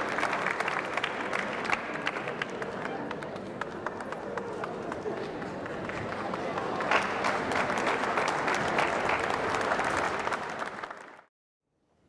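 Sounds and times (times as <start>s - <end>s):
audience applauding: 0.0s - 11.3s.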